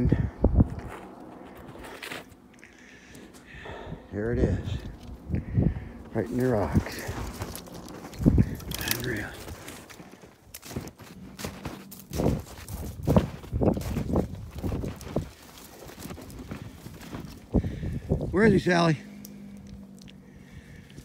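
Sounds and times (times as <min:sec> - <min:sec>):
footsteps crunching in snow: 0:00.6 - 0:03.9, 0:04.6 - 0:21.0
twigs rustling against clothing: 0:00.7 - 0:21.0.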